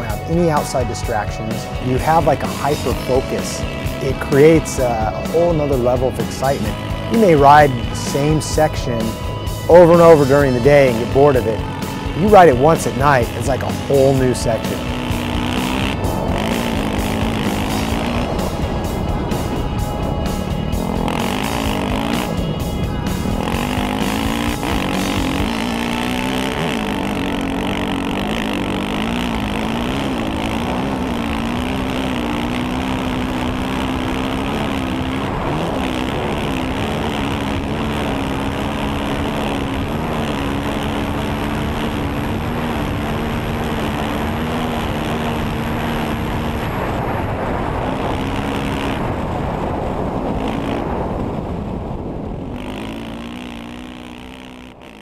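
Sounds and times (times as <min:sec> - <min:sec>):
wind noise: 0:00.0 - 0:25.8, 0:33.1 - 0:53.7
dirt bike engine running: 0:00.0 - 0:55.0.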